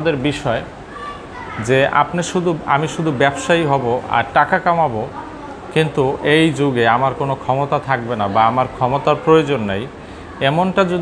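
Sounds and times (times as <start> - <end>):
man speaking: 0.0 - 0.7, 1.6 - 11.0.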